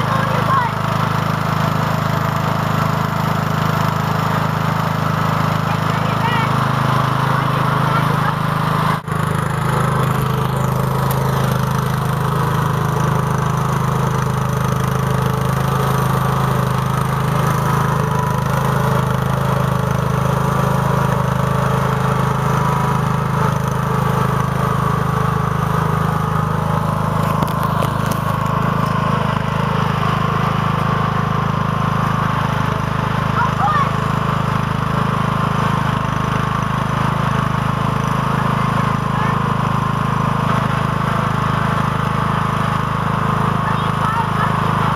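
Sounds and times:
lawn tractor engine running: 0.0s - 44.9s.

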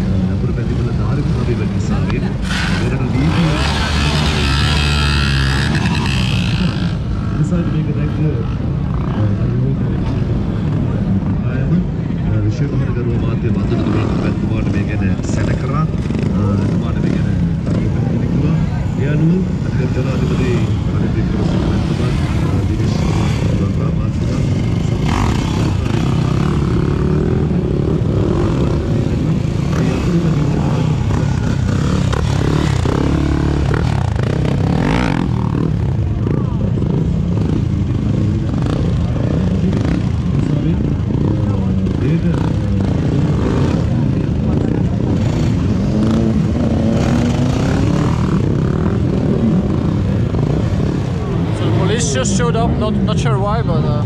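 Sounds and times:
motorcycle engines revving: 0.0s - 54.0s
voices: 0.0s - 54.0s.

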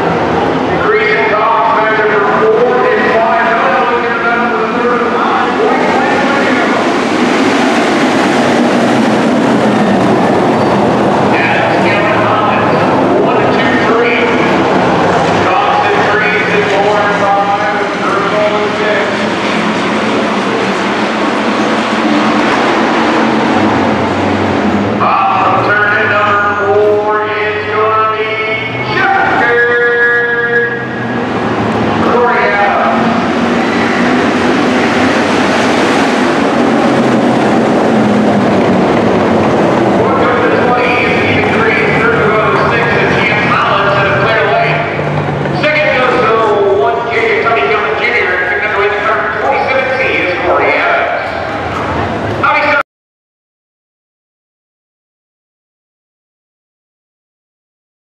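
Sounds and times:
racing car engines droning: 0.0s - 52.8s
person speaking: 0.7s - 7.0s, 11.1s - 14.7s, 15.3s - 19.3s, 25.0s - 31.0s, 39.9s - 51.4s.

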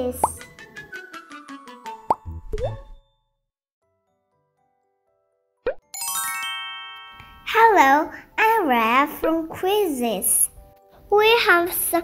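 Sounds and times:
rising plop sound effects: 2.1s - 3.0s, 5.6s - 5.8s
cartoon logo jingle plucked notes: 5.8s - 7.5s.

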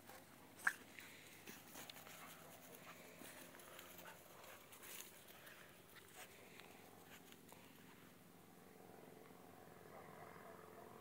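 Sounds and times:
puppy noises: 0.0s - 7.5s.

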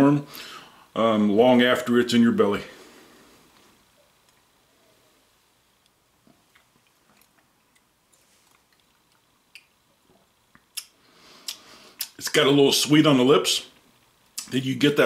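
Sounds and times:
lip smacks: 6.2s - 12.2s, 14.3s - 14.5s
tongue clicks: 8.7s - 9.8s, 10.5s - 12.2s.

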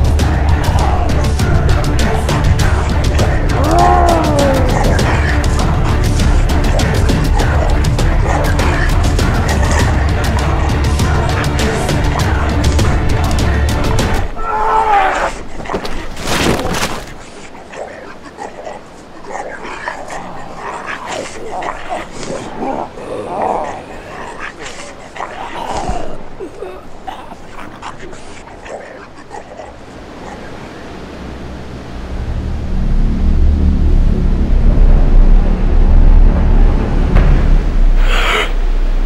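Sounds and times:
deep low rumbling drone: 0.0s - 14.3s, 29.9s - 39.0s
surf-like hiss: 0.0s - 16.2s, 16.9s - 35.8s
dog-like whimpering cries: 3.6s - 5.4s.

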